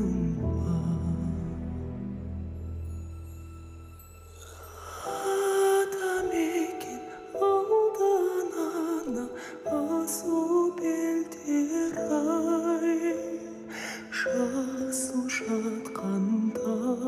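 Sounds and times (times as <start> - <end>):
soft instrumental accompaniment: 0.0 - 17.0
man singing with vibrato: 5.0 - 17.0.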